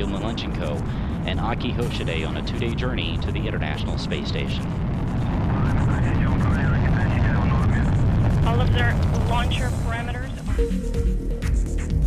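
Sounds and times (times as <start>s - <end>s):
rocket engines rumbling: 0.0s - 10.7s.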